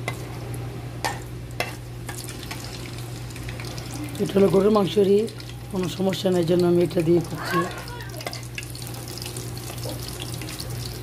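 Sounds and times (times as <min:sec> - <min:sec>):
spices crackling in hot oil: 0:00.0 - 0:11.0.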